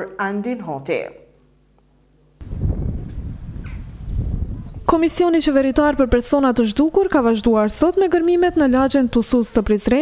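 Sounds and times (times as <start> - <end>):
wind rumbling on microphone: 2.4 - 9.2.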